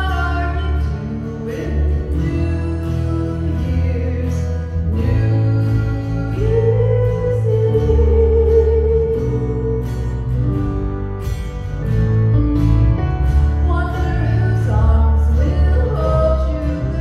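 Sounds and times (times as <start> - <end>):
woman singing: 0.0 - 11.0, 13.4 - 17.0
keyboard: 0.0 - 17.0
strummed acoustic guitar: 0.0 - 17.0.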